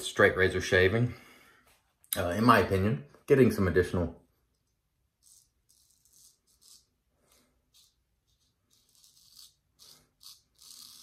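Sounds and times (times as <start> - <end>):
straight razor scraping stubble: 5.2 - 11.0.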